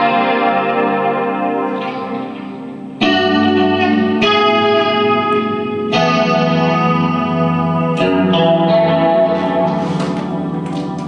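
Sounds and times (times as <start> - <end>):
electric guitar chords ringing: 0.0 - 11.0.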